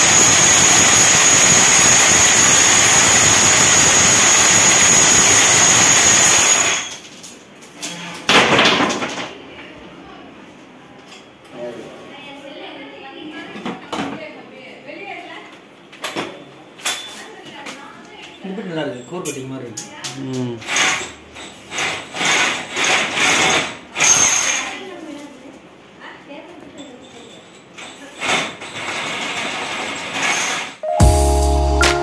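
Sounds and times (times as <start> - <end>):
electric drill grinding into wall: 0.0 - 7.0, 21.7 - 24.5
background music with held tones: 30.8 - 32.0.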